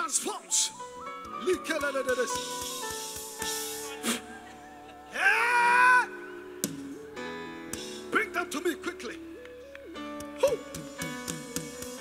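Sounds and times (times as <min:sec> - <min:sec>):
background music chords: 0:00.0 - 0:12.0
person crying out high-pitched: 0:04.2 - 0:06.3.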